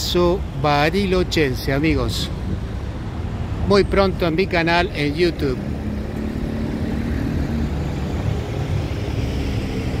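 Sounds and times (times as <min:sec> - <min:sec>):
street traffic noise: 0:00.0 - 0:10.0
vehicle engine humming: 0:00.0 - 0:10.0.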